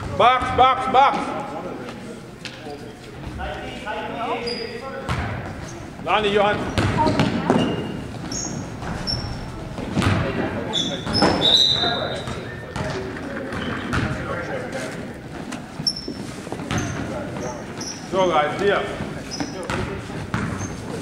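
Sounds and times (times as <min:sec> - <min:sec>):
voices of players and spectators: 0:00.0 - 0:21.0
sneaker squeaks: 0:04.3 - 0:14.4, 0:15.6 - 0:18.2, 0:18.9 - 0:21.0.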